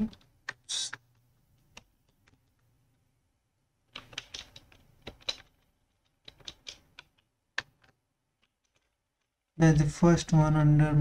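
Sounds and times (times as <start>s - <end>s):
typing on keyboard: 3.9s - 9.3s.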